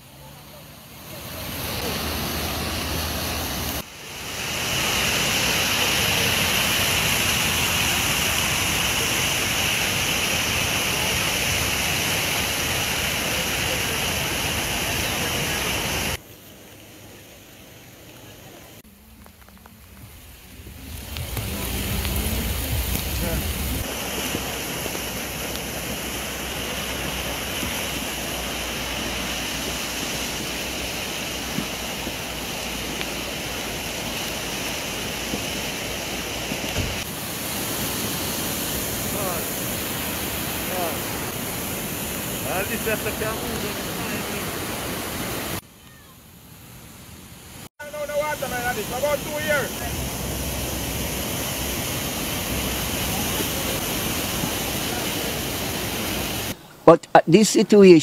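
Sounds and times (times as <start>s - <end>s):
floodwater rushing: 0.0s - 58.0s.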